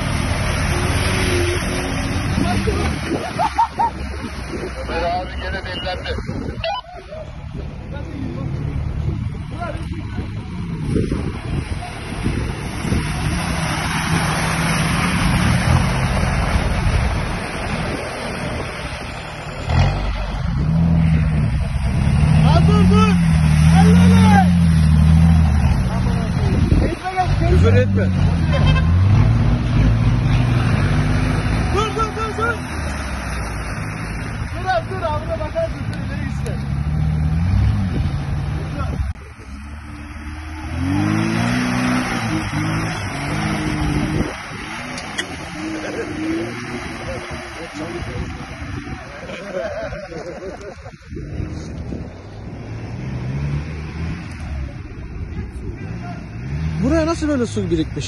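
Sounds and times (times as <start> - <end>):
off-road engines revving: 0.0 - 58.0.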